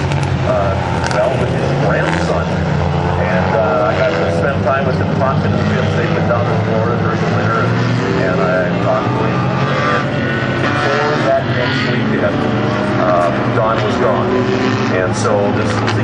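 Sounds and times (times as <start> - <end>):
racing car engines droning: 0.0 - 16.0.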